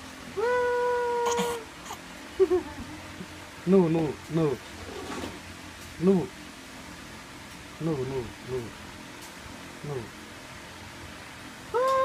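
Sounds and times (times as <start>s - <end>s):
baby crying out aaah: 0.4s - 1.6s.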